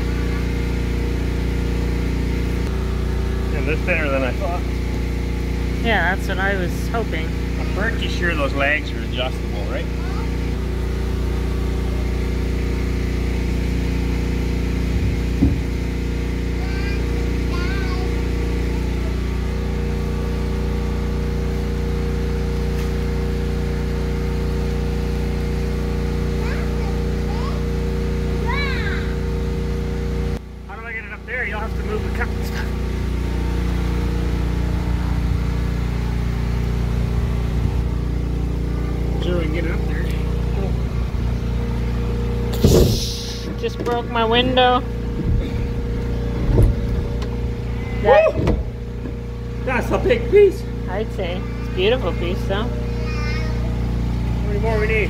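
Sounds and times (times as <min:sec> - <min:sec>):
low machine hum: 0:00.0 - 0:55.0.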